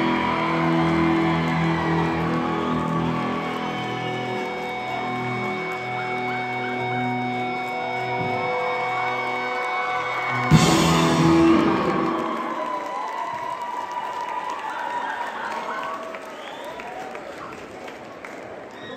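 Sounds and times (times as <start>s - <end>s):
audience applauding and cheering: 0.0s - 18.9s
live rock band: 5.2s - 12.7s.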